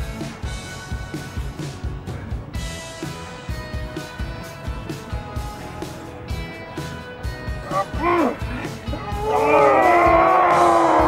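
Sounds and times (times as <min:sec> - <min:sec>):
music: 0:00.0 - 0:11.0
person yelling: 0:07.7 - 0:11.0.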